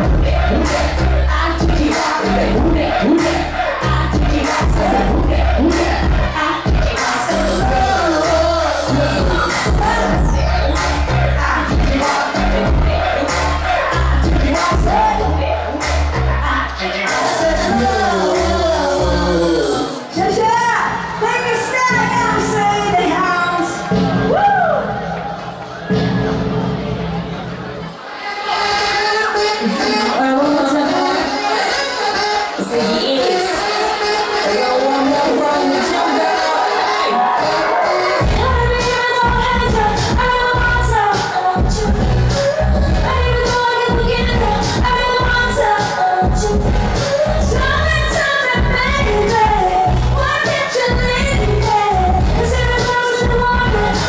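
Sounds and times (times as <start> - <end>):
loud club music with heavy bass: 0.0 - 20.3, 30.9 - 54.0
woman singing into a microphone: 0.0 - 23.8, 29.0 - 31.7, 32.6 - 54.0.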